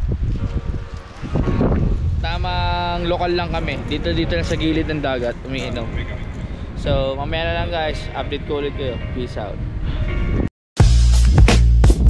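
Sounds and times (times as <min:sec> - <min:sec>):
wind buffeting microphone: 0:00.0 - 0:10.5.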